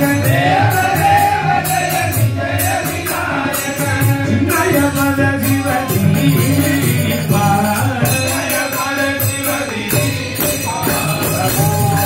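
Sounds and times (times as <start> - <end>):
man singing into a microphone: 0.0 - 12.0
percussion strokes: 0.0 - 12.0.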